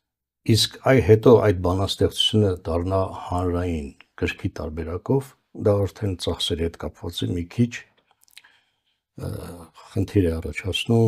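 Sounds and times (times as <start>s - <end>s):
man speaking: 0.5s - 8.0s, 9.2s - 11.0s.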